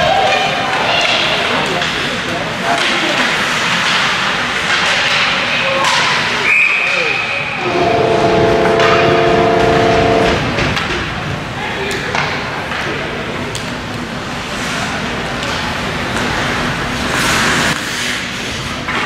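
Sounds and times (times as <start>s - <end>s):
goal horn blast: 7.6s - 10.5s.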